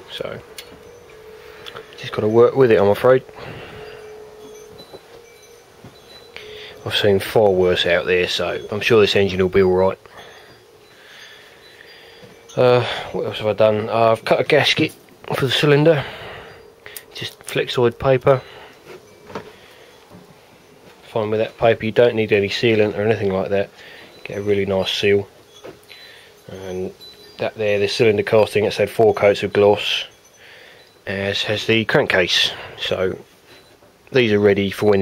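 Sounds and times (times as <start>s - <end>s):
man talking: 0.0s - 0.7s, 1.8s - 3.9s, 6.4s - 10.2s, 12.5s - 18.6s, 21.0s - 25.3s, 26.5s - 30.1s, 31.1s - 33.3s, 34.1s - 35.0s
faint steady hum: 0.0s - 35.0s.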